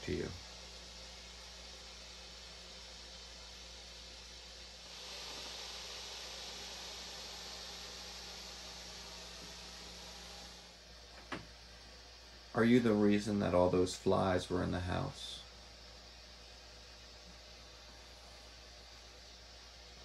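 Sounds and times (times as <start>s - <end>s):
low electrical hum: 0.0s - 20.0s
static hiss: 0.0s - 20.0s.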